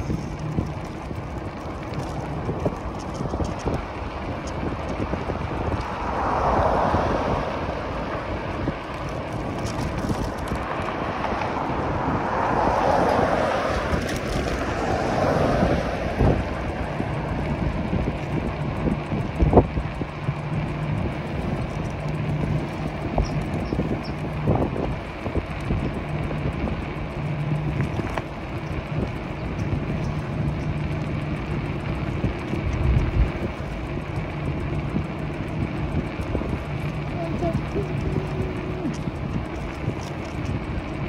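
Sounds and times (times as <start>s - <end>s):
low electric bike hum: 0.0s - 41.0s
tyre noise on asphalt: 0.0s - 41.0s
wind on microphone: 0.0s - 41.0s.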